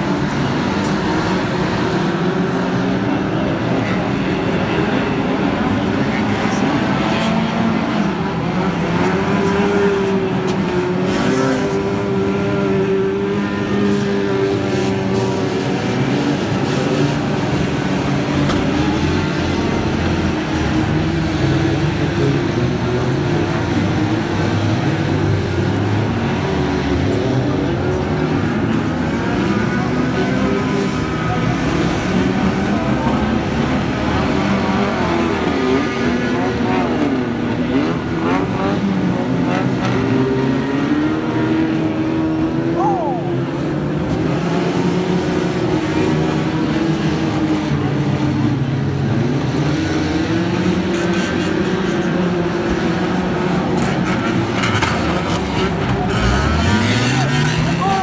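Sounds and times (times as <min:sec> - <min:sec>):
racing car engines revving: 0:00.0 - 0:58.0.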